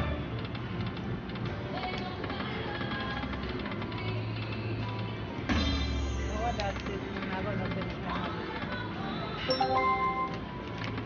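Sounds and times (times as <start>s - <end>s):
slot machine music: 9.4s - 11.0s
slot machine electronic tones: 9.5s - 10.6s.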